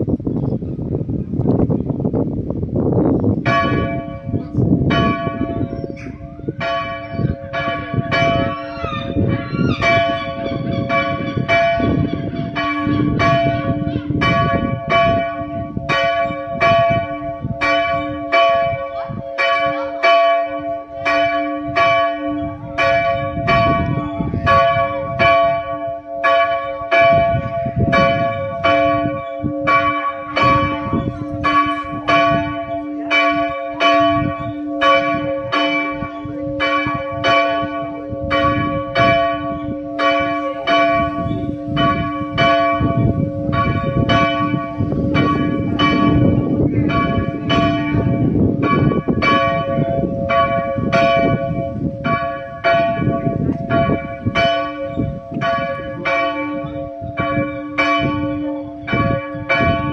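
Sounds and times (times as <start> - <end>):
church bell ringing: 3.4 - 59.9.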